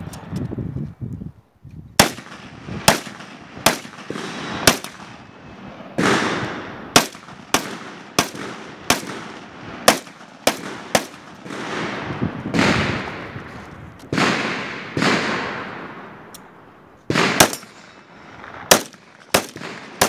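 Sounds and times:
single gunshots with echo: 0:02.0 - 0:05.2, 0:06.0 - 0:13.2, 0:14.1 - 0:16.0, 0:17.1 - 0:18.0, 0:18.7 - 0:20.0.

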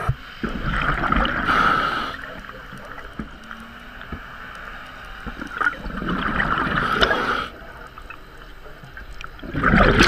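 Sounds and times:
regulator air rush and bubbling: 0:00.0 - 0:04.4, 0:05.2 - 0:10.0
faint clicks: 0:01.5 - 0:05.8, 0:06.5 - 0:09.4.

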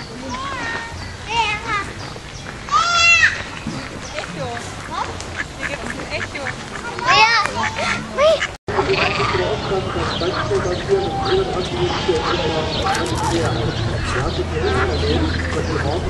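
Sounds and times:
bird calls: 0:00.0 - 0:16.0
people talking: 0:02.7 - 0:16.0
duck quacking: 0:04.4 - 0:16.0.

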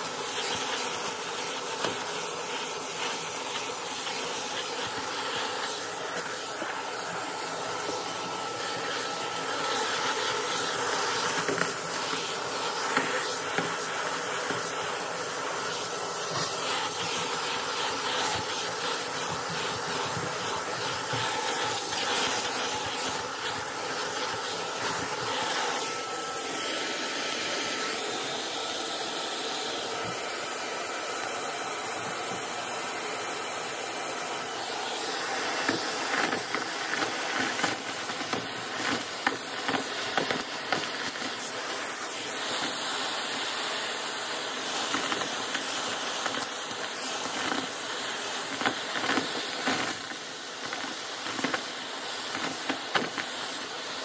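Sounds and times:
vacuum cleaner whine: 0:00.0 - 0:54.0
debris clicking up vacuum tool: 0:35.2 - 0:42.8, 0:44.7 - 0:53.8.

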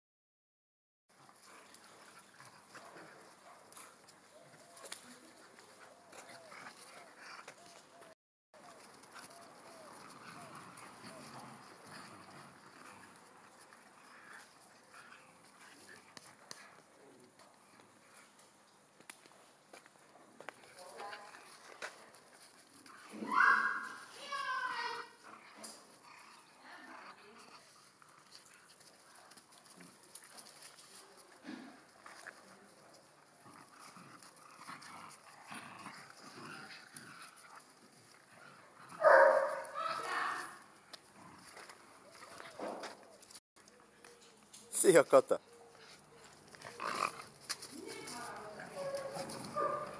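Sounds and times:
dogs scuffling: 0:01.2 - 0:49.9.

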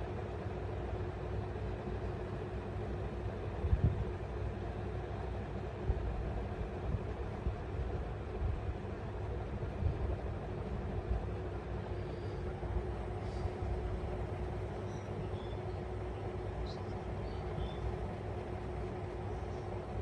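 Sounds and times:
constant hum: 0:00.0 - 0:20.0.

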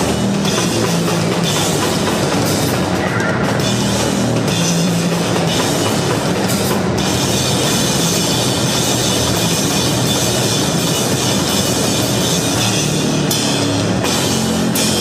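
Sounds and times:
distorted bass guitar: 0:00.0 - 0:15.0
loud drums: 0:00.0 - 0:15.0.

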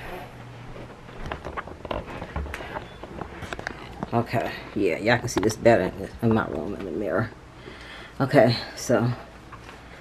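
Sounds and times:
footsteps: 0:00.0 - 0:04.7.

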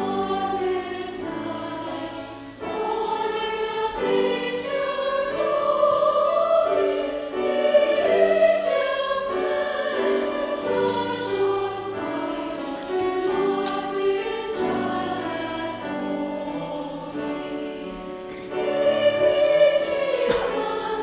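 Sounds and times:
mixed choir singing in harmony: 0:00.0 - 0:21.0.

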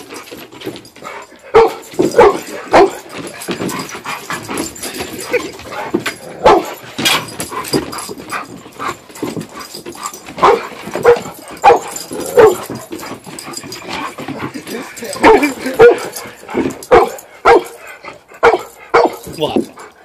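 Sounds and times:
dog barking: 0:01.5 - 0:03.0, 0:06.4 - 0:06.8, 0:10.4 - 0:12.7, 0:15.2 - 0:16.1, 0:16.9 - 0:17.8, 0:18.4 - 0:19.3.

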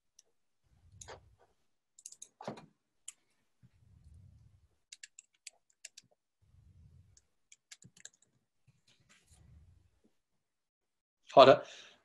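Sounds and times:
computer keyboard keystrokes: 0:04.9 - 0:06.1, 0:07.5 - 0:08.3.

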